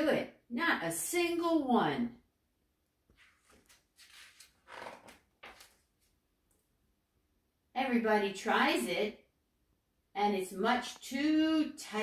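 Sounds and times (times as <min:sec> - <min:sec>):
paper page turning: 0:03.1 - 0:06.2.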